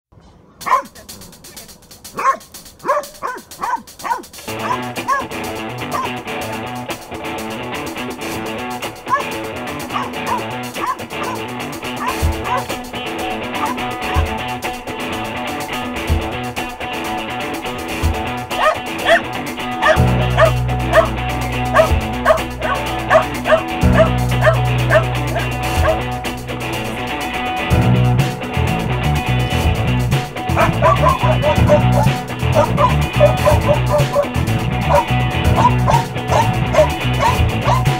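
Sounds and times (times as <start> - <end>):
dog barking: 0.6 - 5.3, 5.9 - 6.2, 9.1 - 12.8, 13.6 - 14.4, 18.5 - 26.0, 30.6 - 34.3, 34.9 - 37.9
guitar-led rock music: 0.7 - 37.9.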